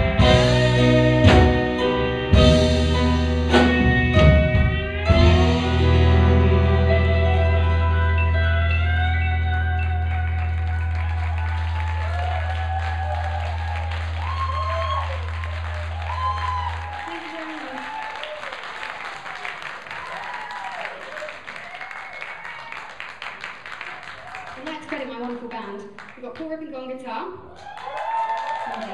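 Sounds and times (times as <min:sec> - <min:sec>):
audience clapping and cheering: 0:08.2 - 0:26.6, 0:27.5 - 0:28.9.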